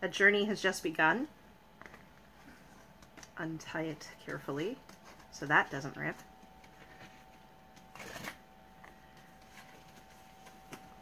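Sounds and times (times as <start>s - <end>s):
thin steady tone humming: 0.0s - 11.0s
paper and card rustling: 1.8s - 11.0s.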